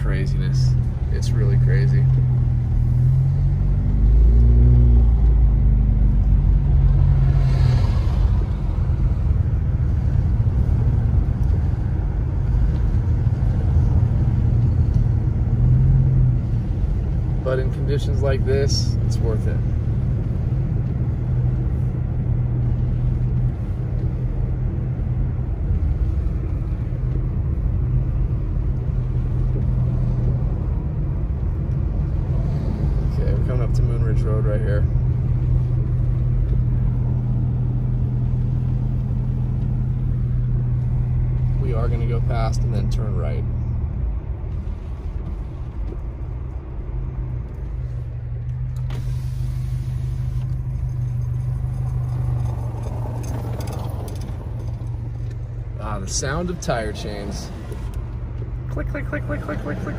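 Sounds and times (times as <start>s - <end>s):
car engine and tyre drone: 0.0s - 59.9s.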